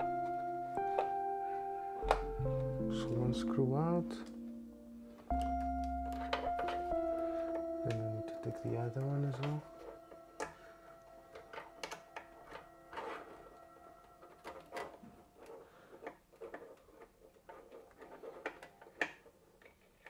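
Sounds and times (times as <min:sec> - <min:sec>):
faint background music: 0:00.0 - 0:15.8.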